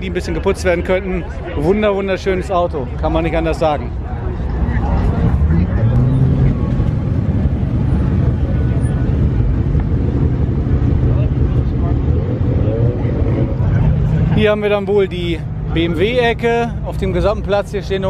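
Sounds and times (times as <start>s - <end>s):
car engine rumbling: 0.0s - 18.0s
faint voices: 0.0s - 18.0s.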